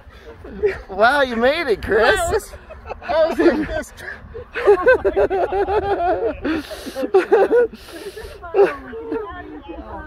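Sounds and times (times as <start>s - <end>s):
people laughing: 0.0s - 9.5s.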